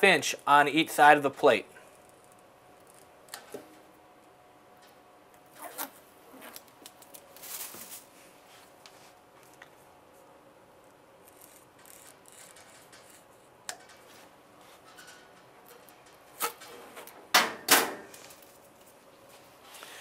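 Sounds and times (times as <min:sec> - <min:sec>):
blade scraping tape: 0:11.2 - 0:13.8.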